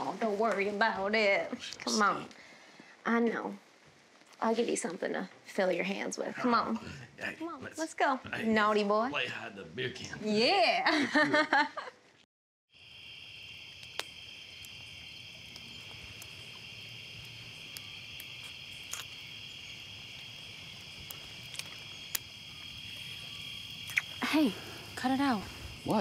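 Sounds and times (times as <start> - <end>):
crickets chirring: 0.0 - 2.5, 4.4 - 11.6, 12.7 - 26.0
campfire crackling: 0.0 - 10.5, 12.8 - 26.0.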